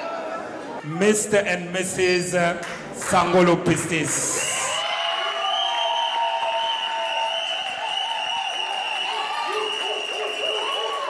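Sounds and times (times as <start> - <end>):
crowd clapping and cheering: 2.5 - 11.0.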